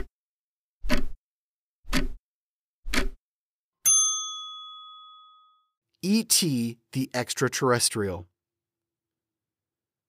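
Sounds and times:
clock ticking: 1.9 - 2.2
bright bell ding: 3.8 - 5.8.

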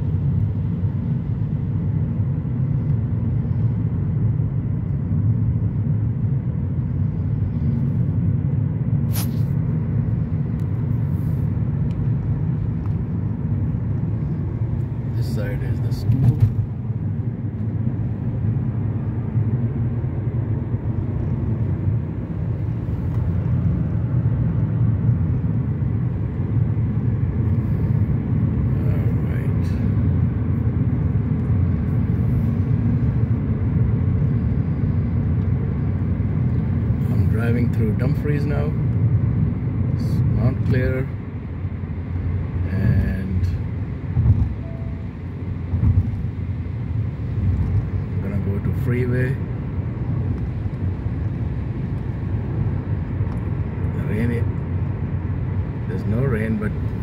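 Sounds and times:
car driving on highway from inside: 0.0 - 57.0.

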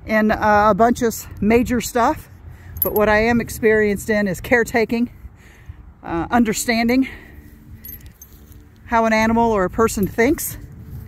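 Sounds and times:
metallic jingling of halter hardware: 2.6 - 3.3, 7.7 - 8.7.

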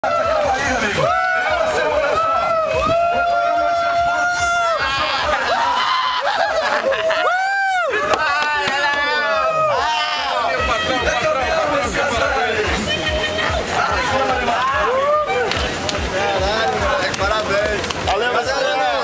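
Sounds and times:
long drawn-out yell: 0.0 - 15.5
crowd shouting and cheering: 0.0 - 19.0.

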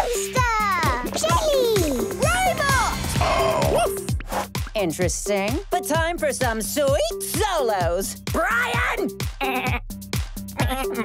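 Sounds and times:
upbeat dance music: 0.0 - 9.4.

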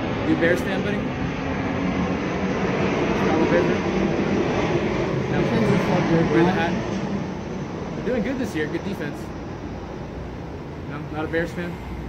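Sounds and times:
engine rumble: 0.0 - 12.0.

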